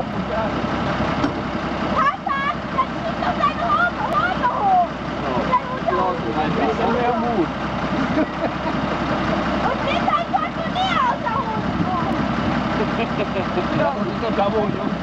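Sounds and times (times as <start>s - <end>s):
people talking: 0.0s - 0.6s, 2.0s - 8.8s, 9.6s - 12.2s, 12.8s - 15.0s
car engine idling: 0.0s - 15.0s.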